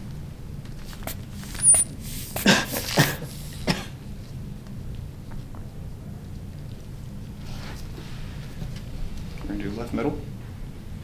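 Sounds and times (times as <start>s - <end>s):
person coughing: 2.4s - 4.0s.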